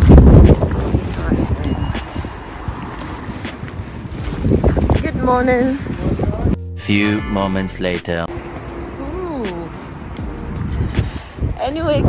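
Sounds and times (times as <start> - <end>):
wind buffeting microphone: 0.0 - 6.6, 8.3 - 12.0.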